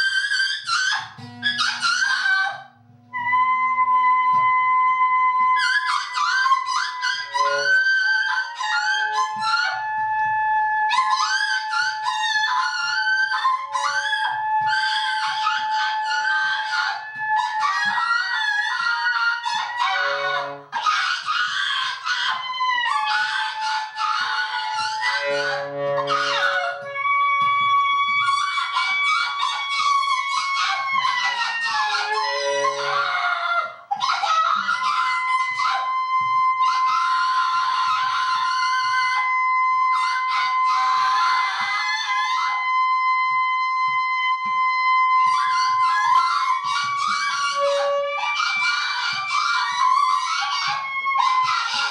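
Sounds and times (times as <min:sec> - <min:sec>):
saxophone holding high tones: 0:00.0 - 0:51.9
scraped clattering guitar: 0:22.4 - 0:33.4.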